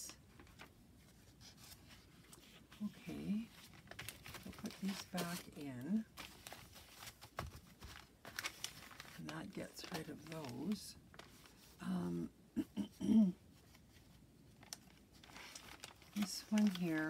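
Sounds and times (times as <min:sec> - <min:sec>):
paper rustling: 0:00.0 - 0:11.8, 0:13.6 - 0:17.0
person murmuring: 0:11.8 - 0:13.4.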